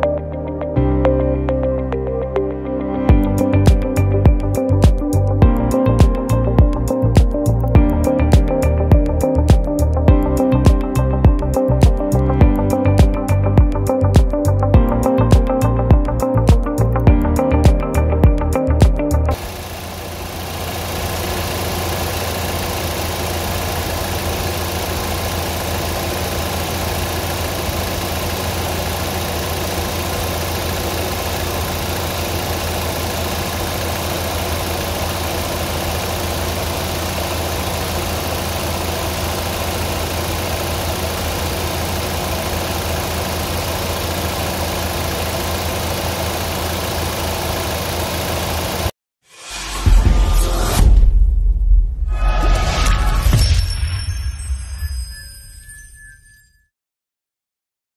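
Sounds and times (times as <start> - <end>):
car engine idling: 19.3 - 48.9.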